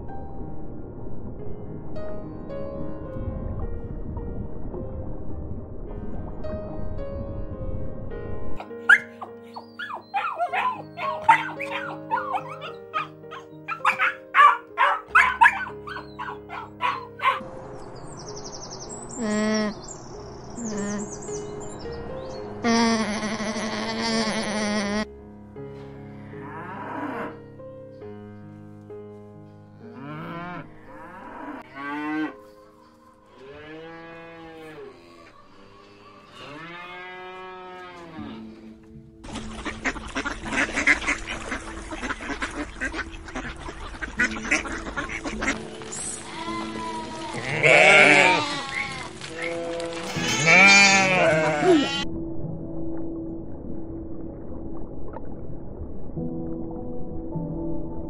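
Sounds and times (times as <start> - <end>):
soft piano music: 0.0 - 36.6, 37.2 - 58.0
ducks quacking loudly: 8.9 - 17.4, 39.3 - 52.0
cattle mooing: 26.0 - 27.4, 30.0 - 32.4, 33.3 - 38.8, 46.6 - 52.0.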